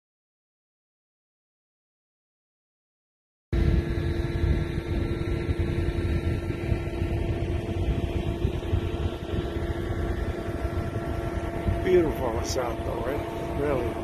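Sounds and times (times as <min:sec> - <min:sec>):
engine drone: 0:03.5 - 0:14.0
wind rumble on microphone: 0:03.6 - 0:14.0.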